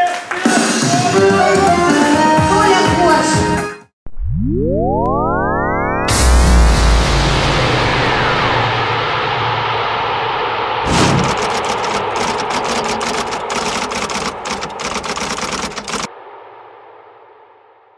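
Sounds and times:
sharp hit: 6.1s - 9.7s
dense crackling clicks: 11.2s - 16.1s.

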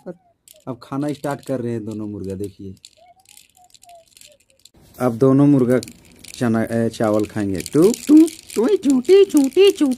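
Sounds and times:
toy roosters pecking clacks: 0.5s - 4.8s, 5.6s - 9.9s.

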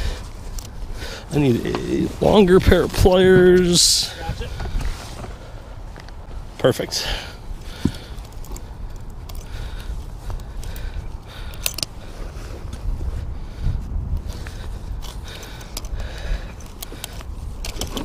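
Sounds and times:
wind rumble on microphone: 0.0s - 6.6s, 7.3s - 18.0s
pliers clicking and clinking: 8.1s - 9.5s, 11.4s - 12.0s.

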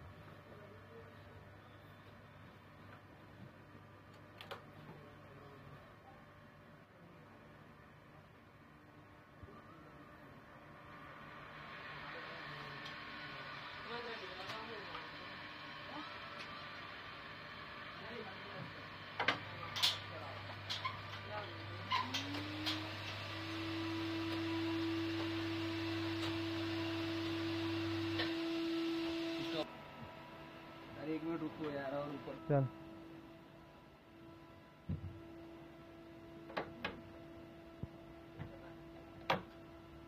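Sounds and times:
electric projector lift humming: 7.9s - 40.0s.

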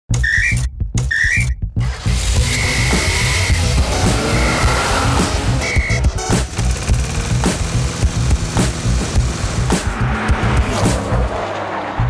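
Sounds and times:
music with pulsing bass beat: 0.1s - 11.4s
whistle toots rising in pitch: 0.2s - 1.6s, 2.4s - 6.1s.

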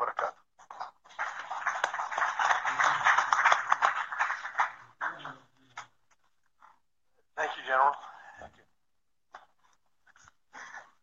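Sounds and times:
audience applauding: 1.1s - 5.5s.

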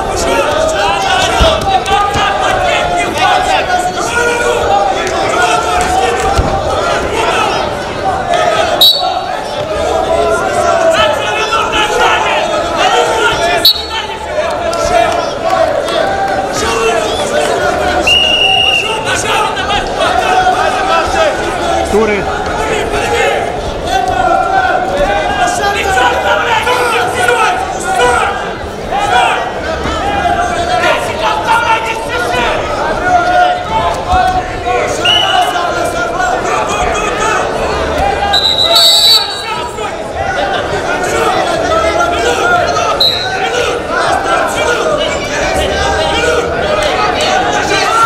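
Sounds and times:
crowd shouting and chatter: 0.0s - 48.0s
high-pitched whistle blast: 8.8s - 9.2s, 38.4s - 39.5s
referee's whistle: 8.8s - 9.3s, 13.6s - 14.1s, 18.0s - 19.0s, 35.0s - 35.5s, 38.3s - 39.6s, 43.0s - 43.4s.

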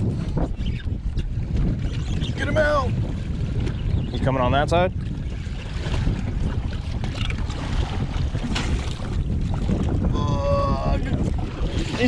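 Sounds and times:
water moving around boat hull: 0.0s - 12.0s
wind rumbling on microphone: 0.0s - 12.0s.

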